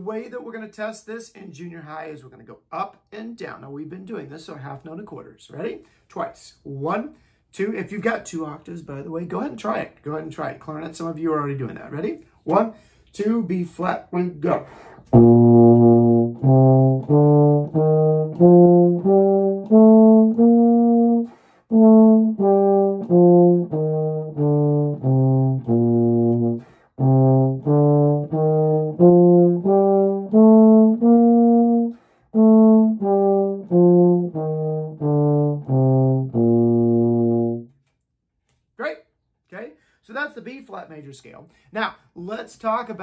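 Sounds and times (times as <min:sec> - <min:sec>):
person sniffing: 0:14.6 - 0:15.1
euphonium playing a scale: 0:15.1 - 0:37.7.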